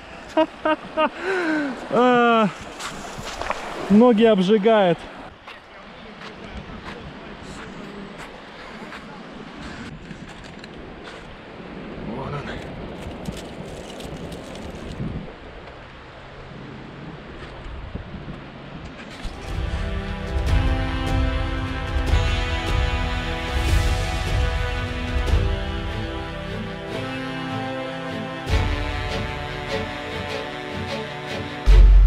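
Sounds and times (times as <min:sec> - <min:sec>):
river water: 0:00.0 - 0:32.0
wind on microphone: 0:06.3 - 0:15.9, 0:17.0 - 0:20.0
background music: 0:19.4 - 0:32.0.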